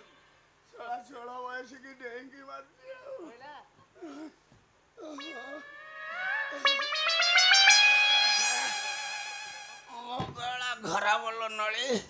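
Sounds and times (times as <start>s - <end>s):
rising held musical chord: 5.2s - 9.9s.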